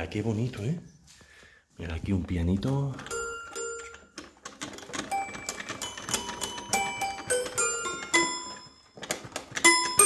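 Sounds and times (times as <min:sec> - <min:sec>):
toy piano notes: 0:02.7 - 0:10.0.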